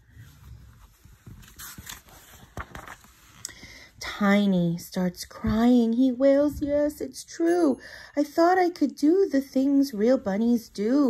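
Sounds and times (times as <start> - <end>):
paper page rustling: 0.1 - 3.4.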